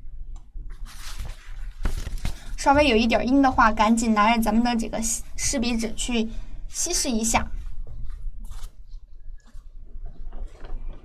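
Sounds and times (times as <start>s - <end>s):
steady low hum: 0.0s - 11.0s
paper rustling: 0.7s - 2.6s, 7.6s - 11.0s.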